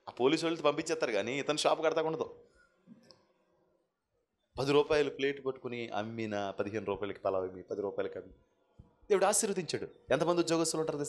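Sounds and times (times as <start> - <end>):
man's amplified speech: 4.6 - 8.2, 9.1 - 11.0.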